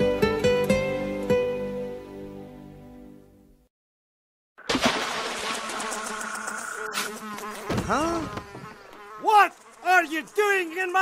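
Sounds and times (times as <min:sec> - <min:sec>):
flies buzzing: 0:04.7 - 0:11.0.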